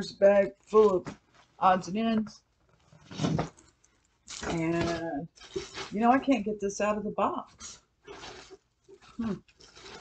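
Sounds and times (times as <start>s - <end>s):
box rustling and scraping: 2.8s - 3.7s, 4.3s - 6.3s, 8.1s - 10.0s.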